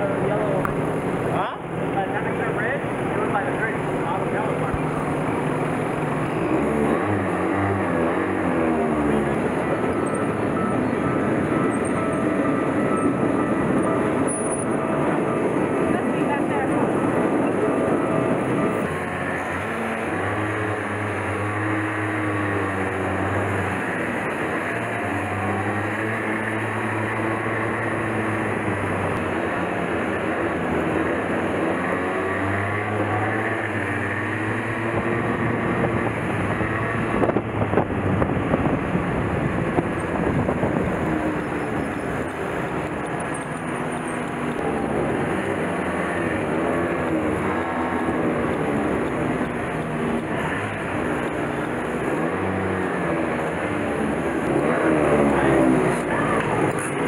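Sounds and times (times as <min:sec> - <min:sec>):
go-kart engine: 0:00.0 - 0:57.0
wind noise: 0:33.3 - 0:52.5.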